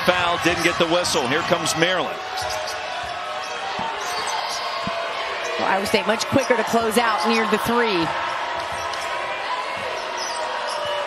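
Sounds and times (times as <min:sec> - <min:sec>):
arena crowd noise: 0:00.0 - 0:11.0
basketball bouncing on hardwood: 0:02.4 - 0:04.2.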